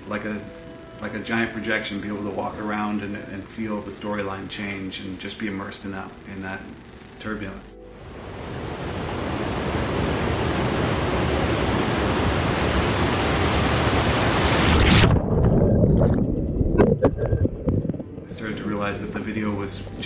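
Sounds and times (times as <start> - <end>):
rushing white water: 8.0 - 15.2
muffled underwater sound: 14.8 - 20.0.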